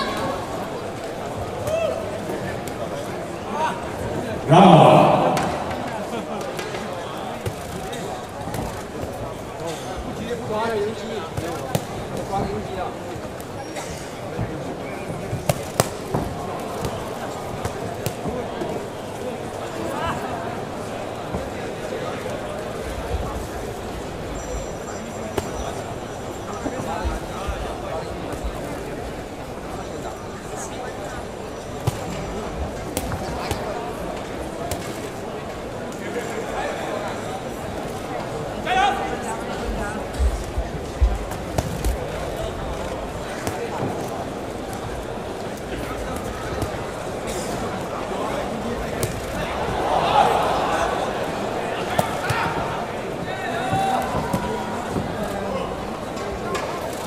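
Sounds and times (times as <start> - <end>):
murmur of voices: 0.0 - 57.0.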